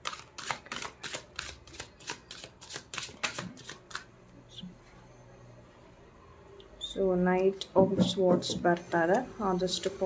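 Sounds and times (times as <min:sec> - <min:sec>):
cards being shuffled: 0:00.0 - 0:04.1.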